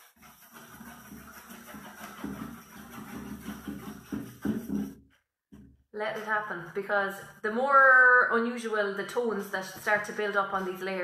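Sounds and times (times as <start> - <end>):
paintbrush scrubbing wet paint: 0.0 - 11.0.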